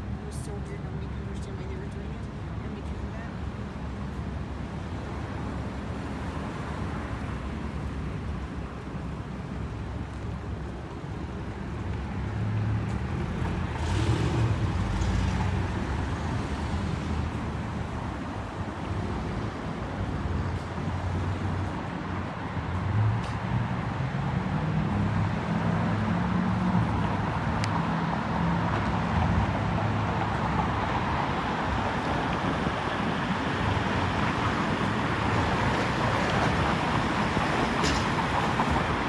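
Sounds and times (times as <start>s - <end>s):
low city traffic rumble: 0.0s - 39.0s.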